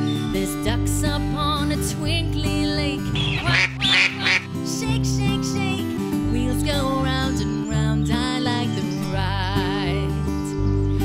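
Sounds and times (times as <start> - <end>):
instrumental music: 0.0 - 11.0
duck quacking: 3.2 - 4.6.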